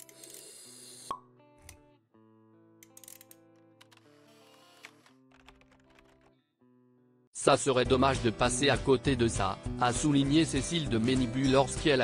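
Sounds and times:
soft background music: 7.4 - 12.0.

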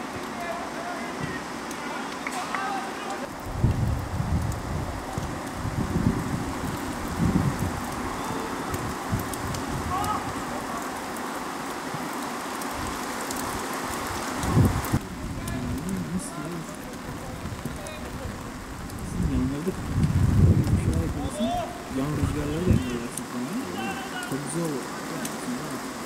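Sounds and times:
distant shouts: 0.0 - 3.3, 8.0 - 8.8, 9.8 - 11.1, 21.2 - 25.2
steady outdoor hiss: 0.0 - 26.0
wind buffeting microphone: 3.3 - 10.6, 12.7 - 23.2.

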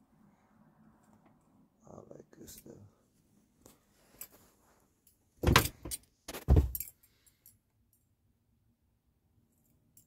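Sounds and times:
phone rustling and knocking: 5.4 - 6.9.

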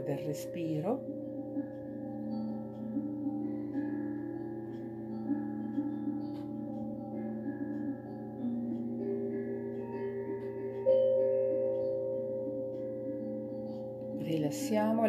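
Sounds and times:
bell-like meditation tones: 0.0 - 15.0
low steady hum: 0.0 - 15.0.

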